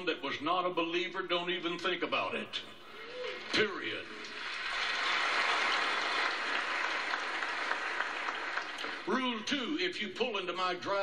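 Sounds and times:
crowd applauding: 0:03.1 - 0:09.1.

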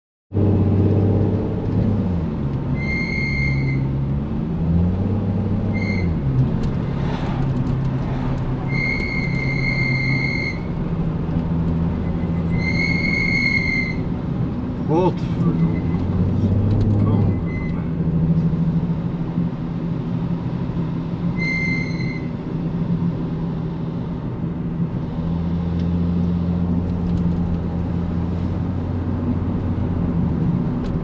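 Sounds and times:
car engine while driving: 0:00.3 - 0:31.0
high steady whistling tone: 0:02.7 - 0:03.9, 0:05.7 - 0:06.2, 0:08.6 - 0:10.7, 0:11.9 - 0:14.1, 0:21.3 - 0:22.4.

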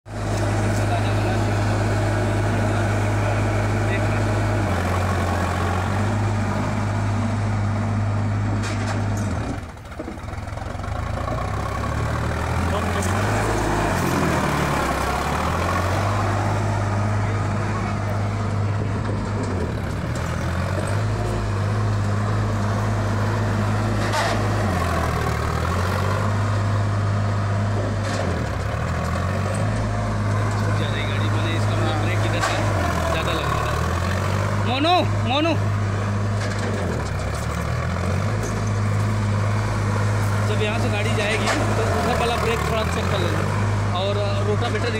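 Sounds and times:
tractor diesel engine under load: 0:00.0 - 0:44.9.

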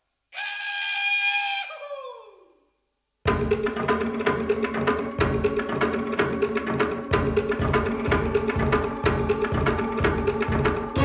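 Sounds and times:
ambient music: 0:03.4 - 0:11.0.

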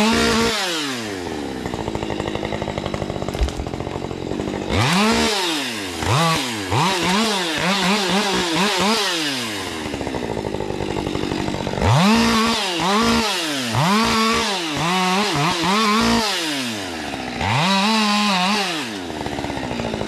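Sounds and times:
chainsaw idling and revving: 0:00.0 - 0:20.0.

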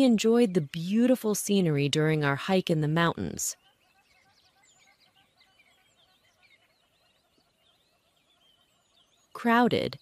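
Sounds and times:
faint bird chirps: 0:03.1 - 0:10.0.

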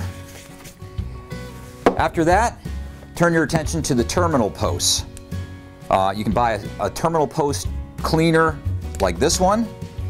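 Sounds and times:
rubbing and handling on bench: 0:00.0 - 0:02.1
background music sustained tones: 0:00.0 - 0:10.0
knocks on bench: 0:01.8 - 0:02.1.

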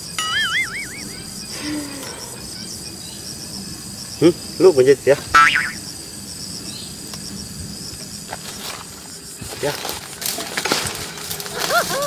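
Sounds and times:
insects chirping: 0:00.0 - 0:12.0
short pitched tone rising and falling: 0:00.2 - 0:02.6.

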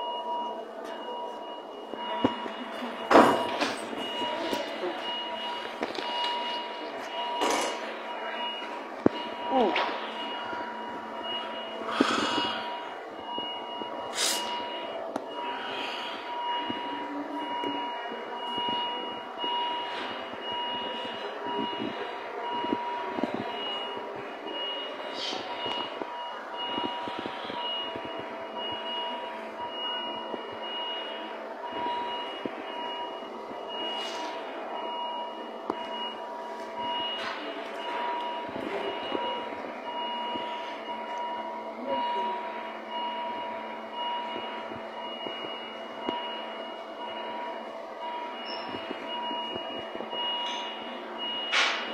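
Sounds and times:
faint voices: 0:00.0 - 0:51.9
noisy background: 0:00.0 - 0:51.9
steady background noise: 0:00.0 - 0:51.9.

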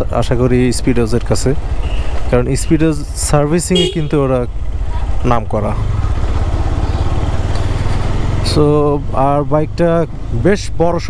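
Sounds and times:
motorcycle engine riding slowly: 0:00.0 - 0:11.0.

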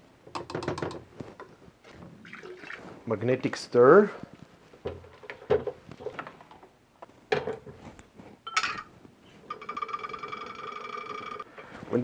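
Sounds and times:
glassware knocks and clicks: 0:08.5 - 0:08.9.

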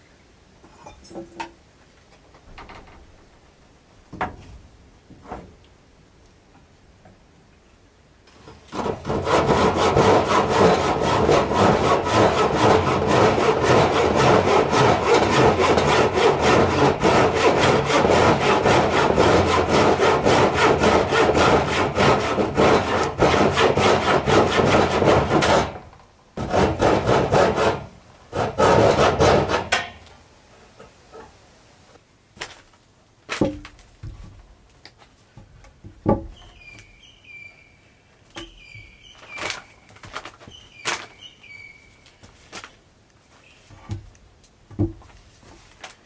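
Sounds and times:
hand saw cutting wood: 0:08.4 - 0:30.0.

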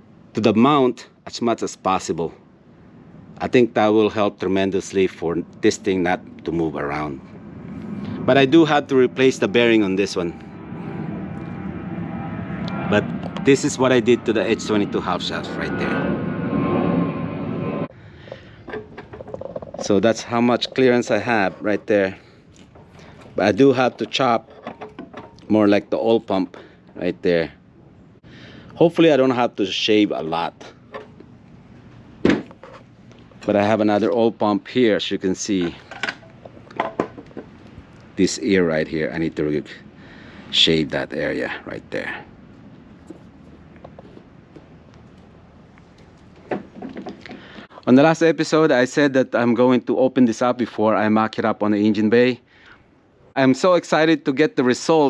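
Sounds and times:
low background noise: 0:00.0 - 0:55.0
man talking: 0:00.4 - 0:02.4, 0:03.4 - 0:07.3, 0:08.2 - 0:10.4, 0:12.7 - 0:16.2, 0:19.8 - 0:22.3, 0:23.4 - 0:24.4, 0:25.4 - 0:27.6, 0:28.8 - 0:30.8, 0:33.4 - 0:35.9, 0:38.2 - 0:39.9, 0:40.5 - 0:42.3, 0:47.8 - 0:52.4, 0:53.4 - 0:55.0.

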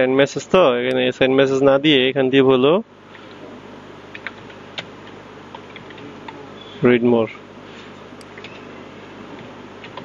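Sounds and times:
background hiss and hum: 0:00.0 - 0:10.0
computer keyboard keystrokes: 0:04.1 - 0:06.4, 0:09.4 - 0:10.0.

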